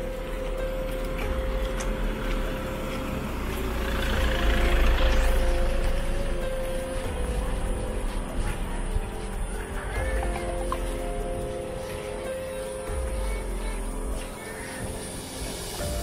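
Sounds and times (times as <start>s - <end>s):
soft background music: 0.0s - 16.0s
car passing by: 0.6s - 9.0s.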